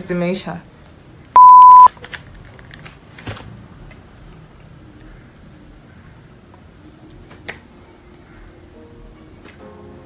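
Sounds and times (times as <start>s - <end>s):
electronic censor beep: 1.4s - 1.9s.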